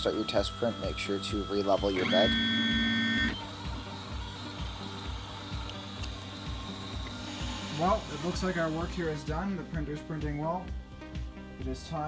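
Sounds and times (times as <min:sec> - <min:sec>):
printer stepper motors running: 0:00.0 - 0:09.0.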